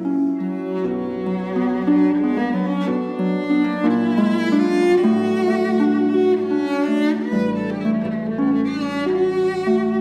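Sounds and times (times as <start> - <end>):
bowed cello melody: 0.0 - 10.0
plucked harp: 0.0 - 10.0.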